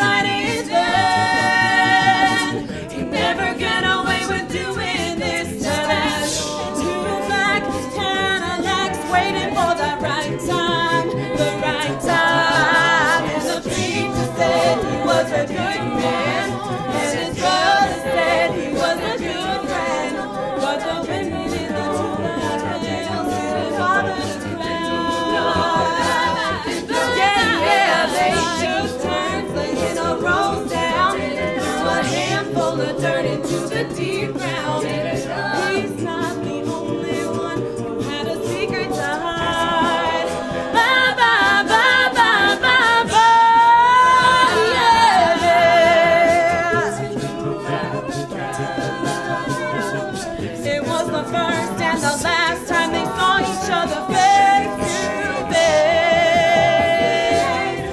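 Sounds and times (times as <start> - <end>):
a cappella group singing: 0.0 - 57.9.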